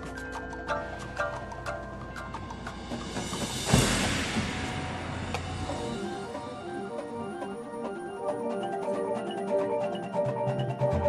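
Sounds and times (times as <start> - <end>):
mallet percussion notes: 0.0 - 11.0
drum and bugle corps music: 1.6 - 8.2
low drum hit with cymbal crash: 3.0 - 6.7.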